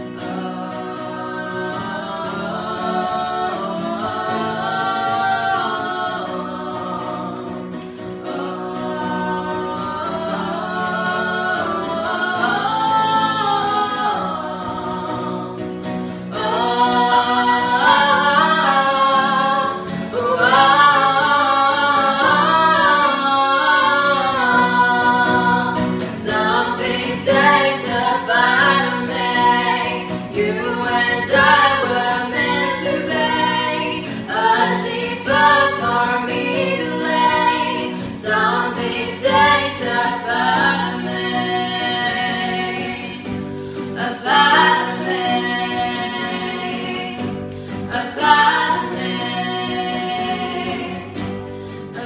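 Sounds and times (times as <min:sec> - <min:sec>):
strummed classical guitar: 0:00.0 - 0:52.0
women singing in harmony: 0:00.0 - 0:52.0.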